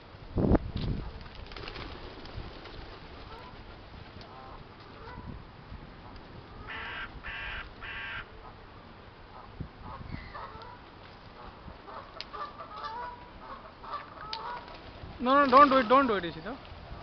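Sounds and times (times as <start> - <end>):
outdoor background noise: 0.0 - 17.0
harsh bird calls: 6.5 - 8.6.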